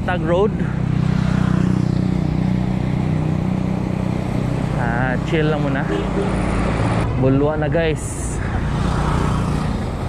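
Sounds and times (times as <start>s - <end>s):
wind and road noise: 0.0s - 10.0s.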